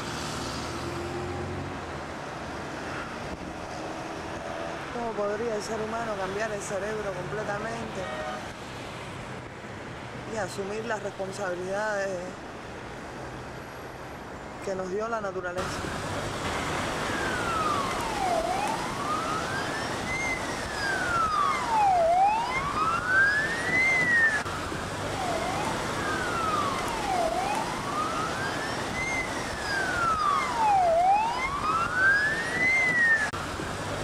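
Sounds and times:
street and wind noise: 0:00.0 - 0:34.0
siren wailing: 0:15.6 - 0:34.0.

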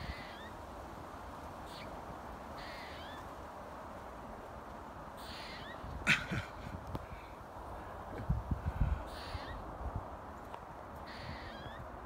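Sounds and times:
squirrel meowing call: 0:00.0 - 0:00.5, 0:01.6 - 0:01.9, 0:02.6 - 0:03.3, 0:05.2 - 0:06.3, 0:09.1 - 0:09.6, 0:11.0 - 0:11.9.

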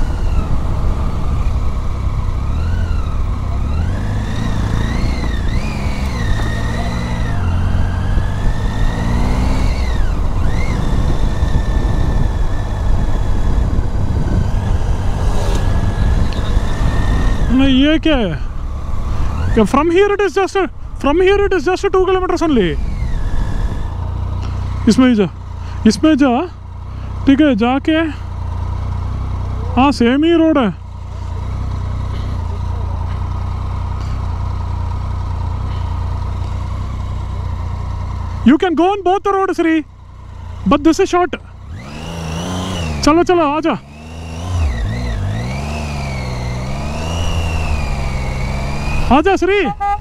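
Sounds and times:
motorcycle engine idling: 0:00.0 - 0:42.3
people talking: 0:17.5 - 0:18.5, 0:19.6 - 0:22.8, 0:24.9 - 0:26.5, 0:27.3 - 0:28.2, 0:29.5 - 0:30.8, 0:38.5 - 0:39.9, 0:40.7 - 0:41.4, 0:43.0 - 0:43.8, 0:49.1 - 0:49.8.

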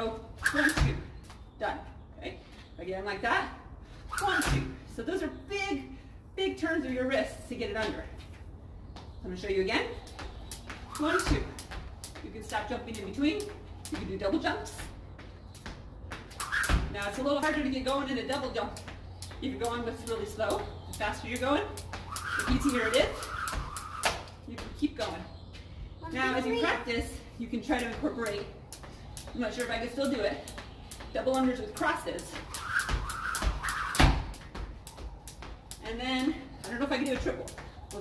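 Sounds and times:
jump rope slapping concrete: 0:00.4 - 0:01.0, 0:09.8 - 0:25.2, 0:27.0 - 0:38.0.

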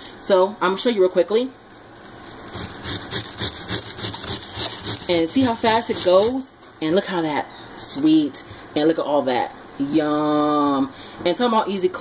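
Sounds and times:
cabbage rasping on metal grater: 0:02.5 - 0:06.4.

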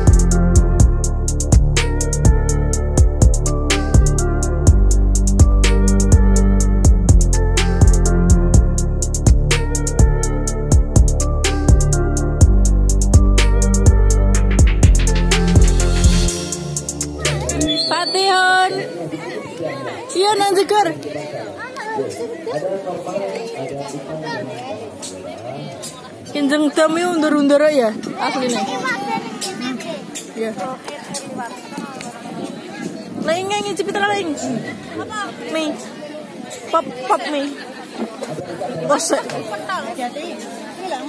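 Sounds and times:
people chattering: 0:13.0 - 0:41.0
children and women talking: 0:16.4 - 0:41.0
child's voice: 0:28.1 - 0:30.2.

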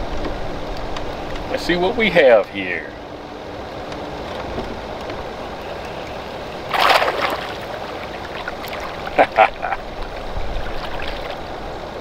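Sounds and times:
wind: 0:00.0 - 0:12.0
lapping water: 0:05.7 - 0:11.5
fish splashing at water surface: 0:06.6 - 0:11.5.

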